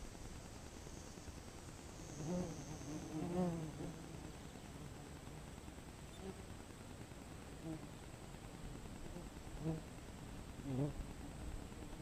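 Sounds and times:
wasp wing buzz: 0.1 - 5.4.

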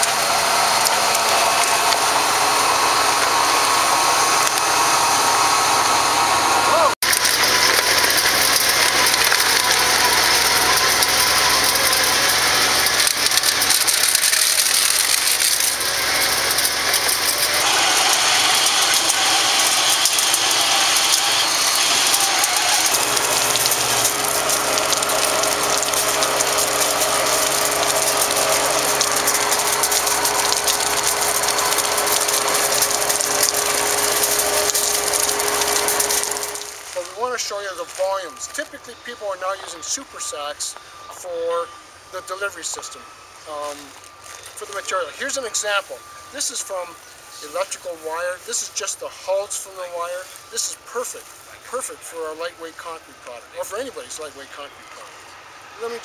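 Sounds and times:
trash rattling in shredder: 0.0 - 4.7, 7.0 - 40.8
industrial shredder running: 0.0 - 56.0.

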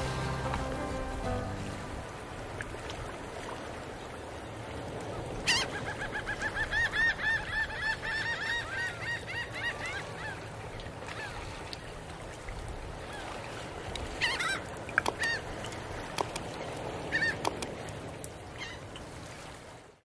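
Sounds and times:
bird honking calls: 14.2 - 15.4
sharp click: 17.4 - 17.7.

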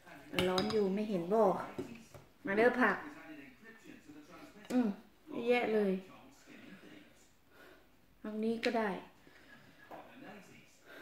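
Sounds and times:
cutlery clinking on glass bowl: 0.4 - 0.9
woman speaking: 8.2 - 9.1.

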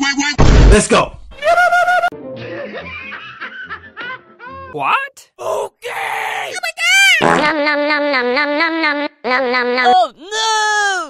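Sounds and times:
cartoon character laughing: 1.4 - 2.1.

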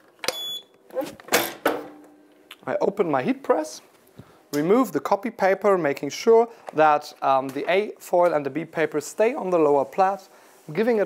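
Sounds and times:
timer beep: 0.3 - 0.7.

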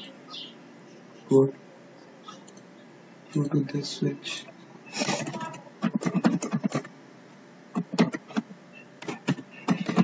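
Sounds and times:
computer keyboard typing: 5.2 - 6.9, 7.7 - 10.0.

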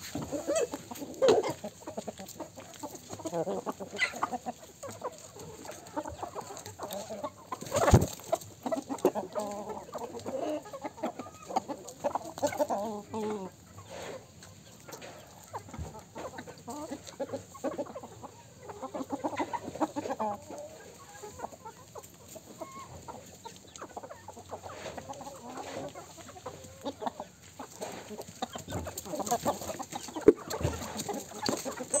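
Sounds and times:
chickens clucking: 0.0 - 32.0.

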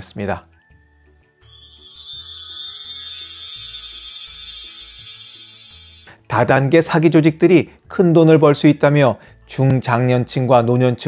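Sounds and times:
shimmering high chime: 1.4 - 6.2.

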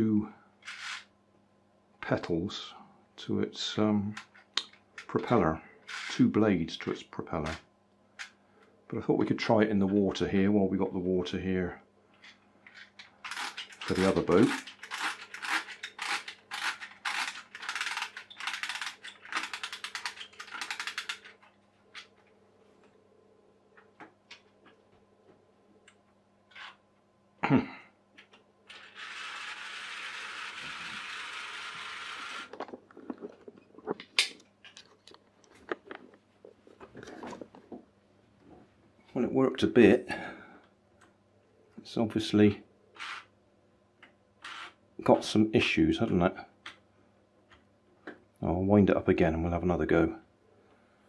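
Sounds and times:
scattered clicks: 13.3 - 22.1.

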